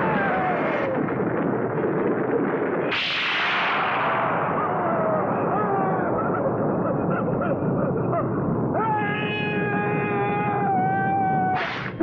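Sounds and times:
long wail: 0.0s - 1.1s, 4.1s - 6.7s, 8.7s - 11.8s
steady roar of noise: 0.0s - 12.0s.

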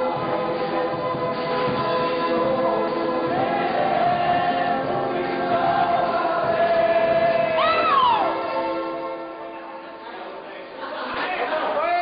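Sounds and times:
group of voices singing: 0.0s - 8.6s.

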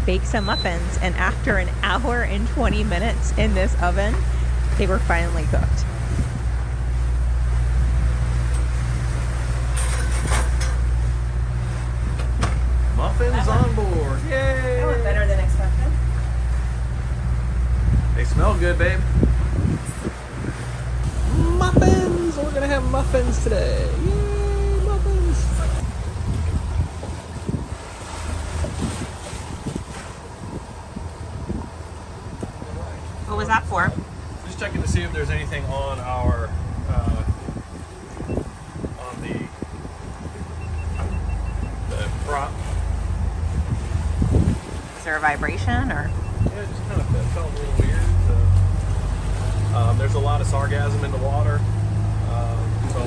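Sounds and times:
low engine drone: 0.0s - 53.0s
water rushing past hull: 0.0s - 53.0s
wind buffeting microphone: 0.0s - 53.0s.

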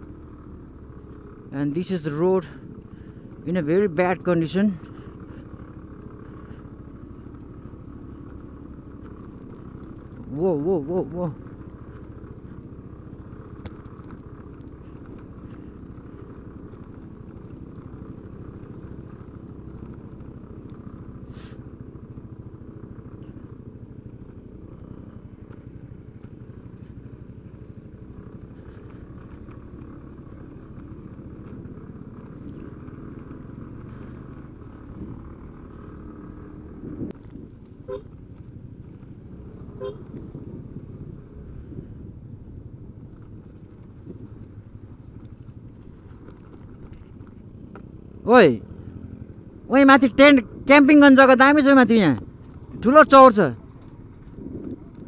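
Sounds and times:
motorcycle engine running: 0.0s - 55.0s
road and wind rumble: 0.0s - 55.0s
horn beeps: 39.8s - 40.1s.

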